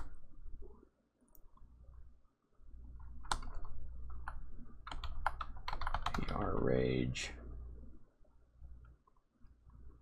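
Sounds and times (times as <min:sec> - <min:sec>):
keyboard keystrokes: 0:03.2 - 0:06.4.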